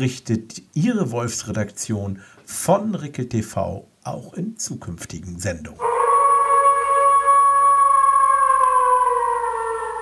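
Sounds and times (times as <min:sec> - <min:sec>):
wolf howling: 0:05.8 - 0:10.0.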